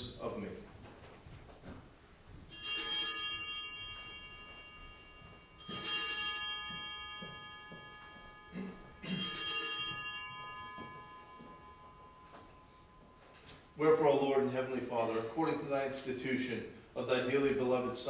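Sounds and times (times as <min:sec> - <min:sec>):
small altar bells ringing: 0:02.4 - 0:15.6.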